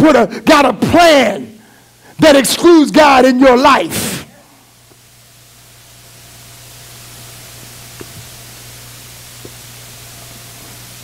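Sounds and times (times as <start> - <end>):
man's voice: 0.0 - 1.6, 2.2 - 4.4
steady hiss: 0.0 - 11.0.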